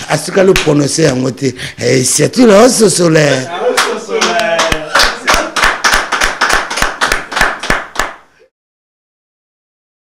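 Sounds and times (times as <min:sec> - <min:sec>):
person speaking: 0:00.0 - 0:05.6
hand claps: 0:00.4 - 0:01.2, 0:03.3 - 0:08.3.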